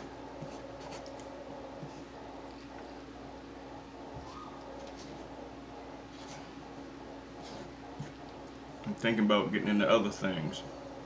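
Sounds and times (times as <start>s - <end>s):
low hum: 0.0s - 9.7s.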